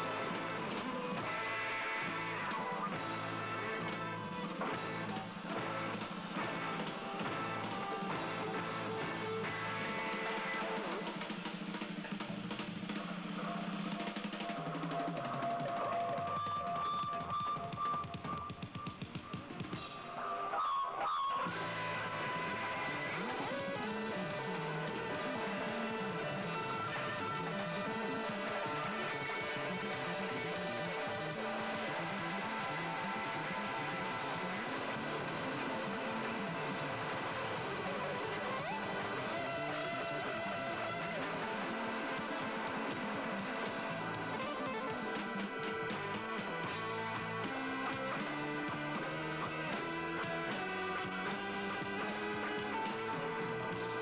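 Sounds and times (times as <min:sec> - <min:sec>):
rock drum kit rolling: 0:00.0 - 0:20.1, 0:21.4 - 0:54.0
electric guitar: 0:00.0 - 0:54.0.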